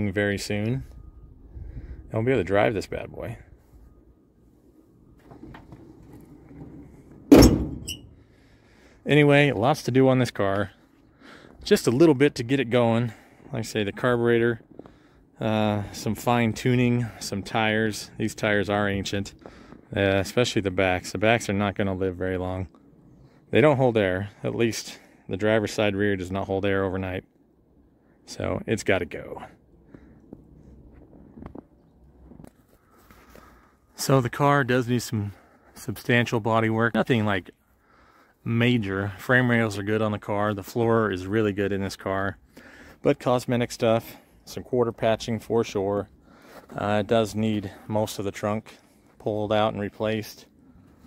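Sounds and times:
low outdoor rumble: 0.0 - 51.0
car hood slamming shut: 7.3 - 8.0.

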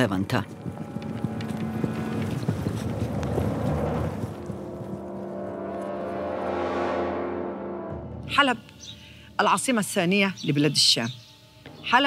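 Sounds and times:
low musical drone: 0.0 - 12.0.

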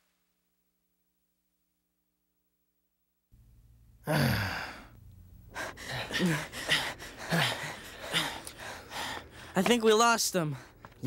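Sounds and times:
person gasping exhale: 4.1 - 5.0
person panting heavily: 5.5 - 9.7.

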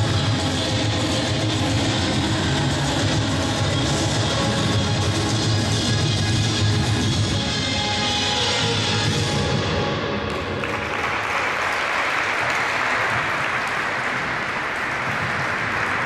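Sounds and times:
audience applause: 10.4 - 16.0.

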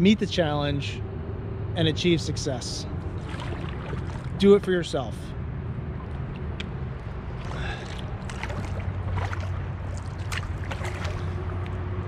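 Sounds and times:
steady low rumble: 0.0 - 12.0
paddle splashing water: 3.1 - 4.4, 7.2 - 12.0.

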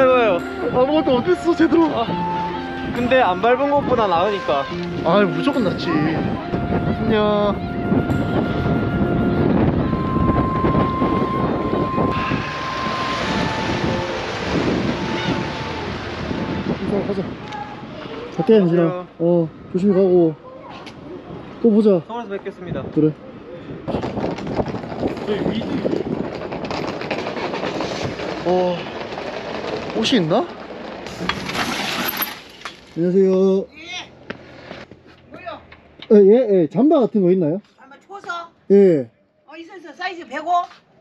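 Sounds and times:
wind blowing across microphone: 0.4 - 18.8, 20.6 - 31.5.

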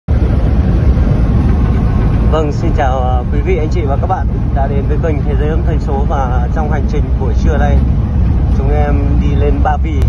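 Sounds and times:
car interior road and engine rumble: 0.1 - 10.0.

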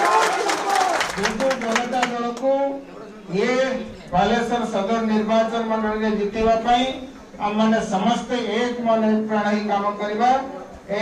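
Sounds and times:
people clapping: 0.0 - 2.6
man speaking into microphone: 1.1 - 11.0.

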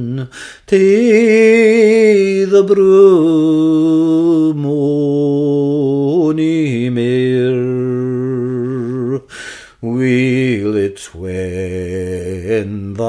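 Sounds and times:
man singing unaccompanied: 0.0 - 13.0.

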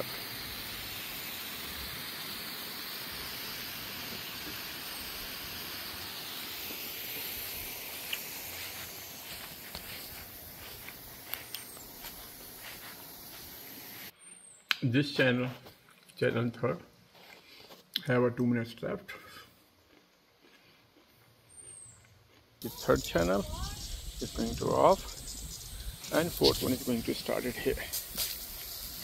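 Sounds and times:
sprinkler spraying water: 0.0 - 14.1, 22.6 - 29.0
sprinkler clicks: 4.1 - 13.6, 22.6 - 29.0.

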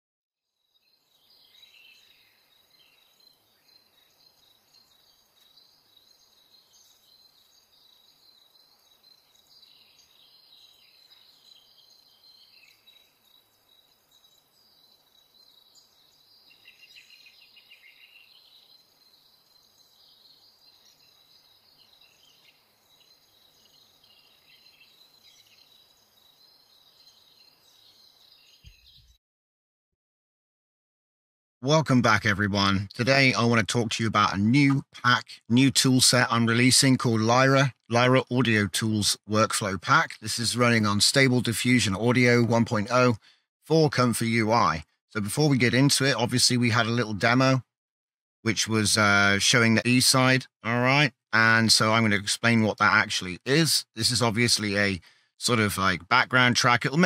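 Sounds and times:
insect chirring: 0.5 - 28.9
bird chirps: 0.5 - 29.2, 40.3 - 47.5.

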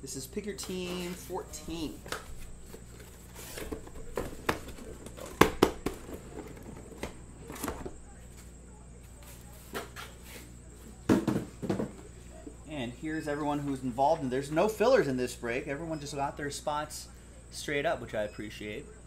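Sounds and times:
cardboard rustling: 0.7 - 8.5
boxes knocking on a table: 3.6 - 7.9, 11.1 - 12.1.

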